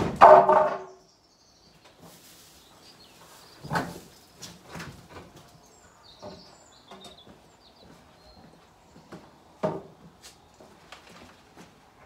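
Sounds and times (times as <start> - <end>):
birds chirping: 0.2 - 9.6.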